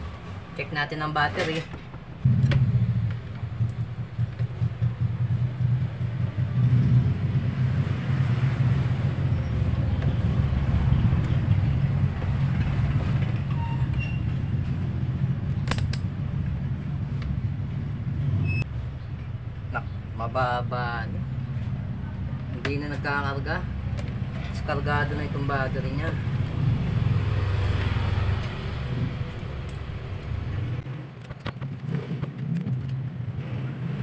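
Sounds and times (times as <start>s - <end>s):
low mechanical rumble: 0.0s - 31.2s
sharp click: 15.6s - 16.1s.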